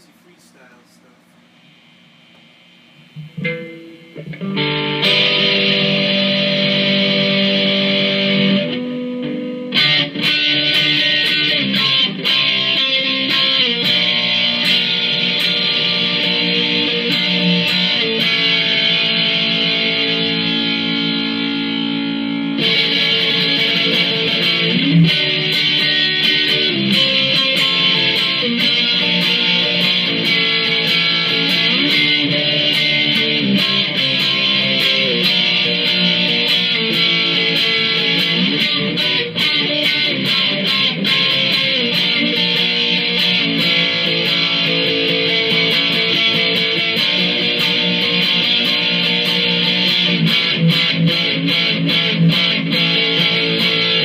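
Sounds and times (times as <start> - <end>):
electric guitar lead lines: 0.0 - 54.0.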